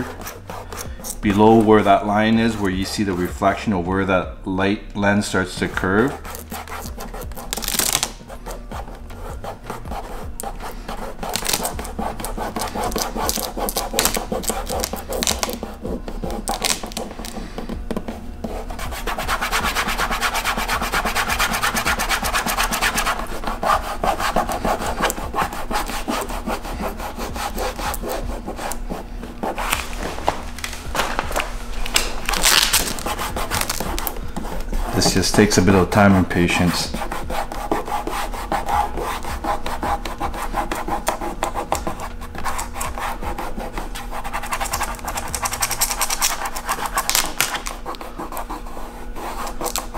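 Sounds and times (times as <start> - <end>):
thumb rubbing film on plastic: 6.1 - 35.7, 36.6 - 49.9.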